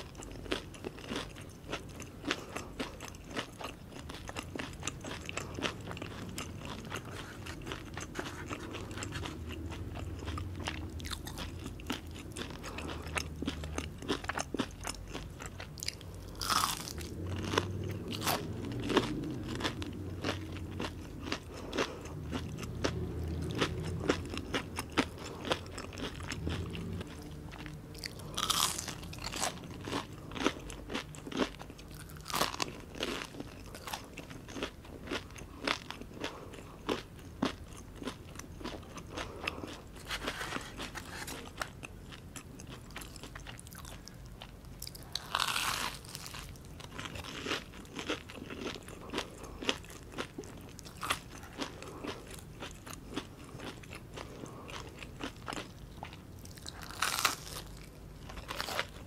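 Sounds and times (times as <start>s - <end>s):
chewing: 0.0s - 59.0s
crisp food crunching: 0.0s - 59.0s.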